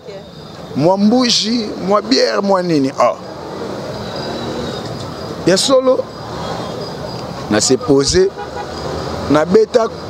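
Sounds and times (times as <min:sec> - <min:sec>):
man talking into microphone: 0:00.8 - 0:03.2, 0:05.4 - 0:06.1, 0:07.5 - 0:08.4, 0:09.2 - 0:10.0.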